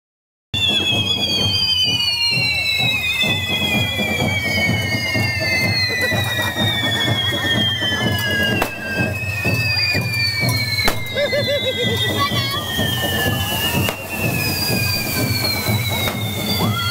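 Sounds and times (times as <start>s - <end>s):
firework fountain whistling: 0.6s - 16.9s.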